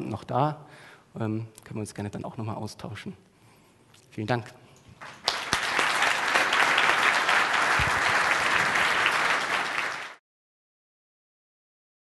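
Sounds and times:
audience applauding: 5.0s - 10.2s.

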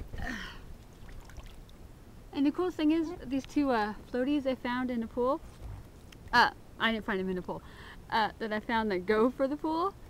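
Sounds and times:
pool water lapping: 0.8s - 1.8s.

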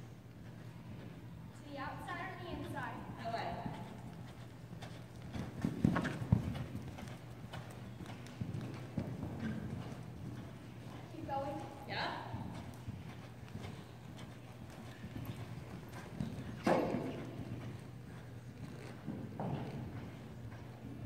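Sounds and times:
horse hoofbeats on sand: 2.1s - 21.0s.

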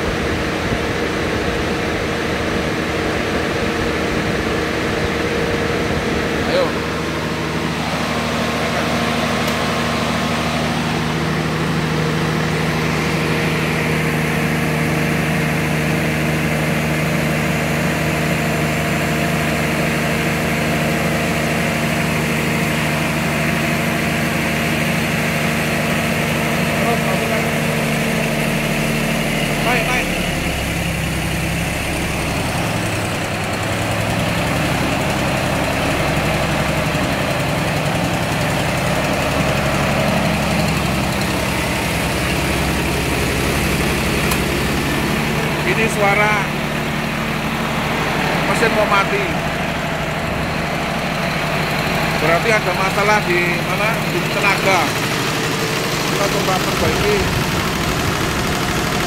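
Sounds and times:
diesel generator engine labouring: 0.0s - 59.0s.

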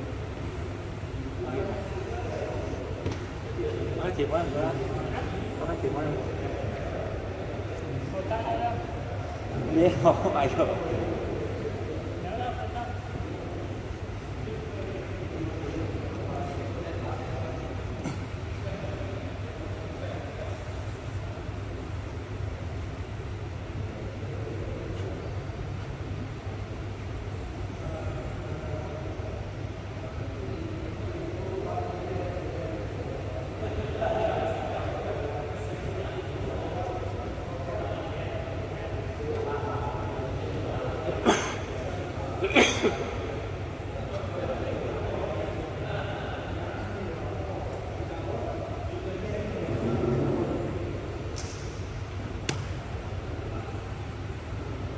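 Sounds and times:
people talking: 0.0s - 54.9s
steady low hum: 0.0s - 54.9s.

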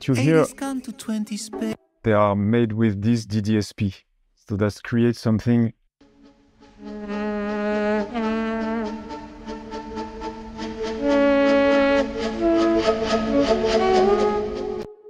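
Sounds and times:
synthesized flute notes: 6.8s - 15.0s.

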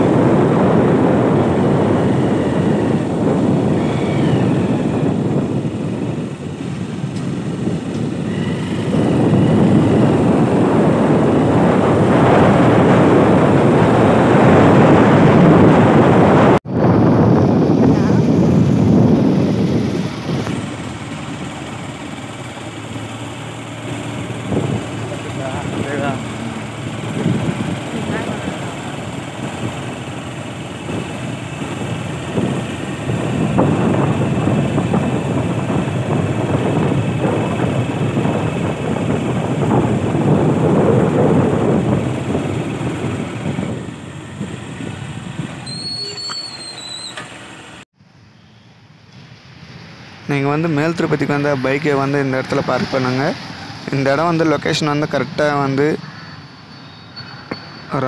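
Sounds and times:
wind rushing over microphone: 0.0s - 47.0s, 49.2s - 58.0s
motorbike engine and road noise: 0.0s - 58.0s
quiet outdoor ambience: 48.0s - 58.0s.

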